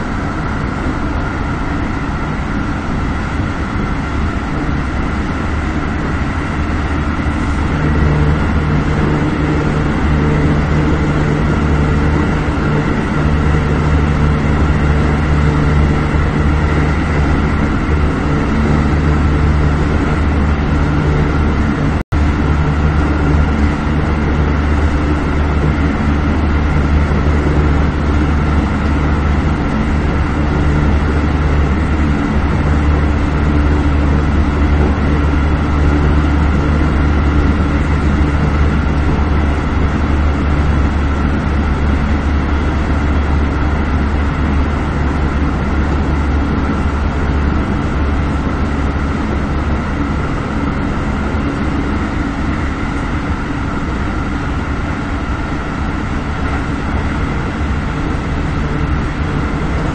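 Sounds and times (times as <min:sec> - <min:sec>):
electric train humming: 0:00.0 - 0:59.9
steady tones: 0:00.0 - 0:59.9.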